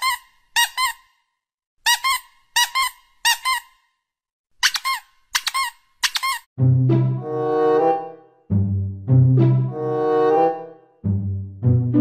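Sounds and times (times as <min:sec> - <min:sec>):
squeaky toy squeaking: 0:00.0 - 0:01.2, 0:01.8 - 0:03.9, 0:04.6 - 0:06.5.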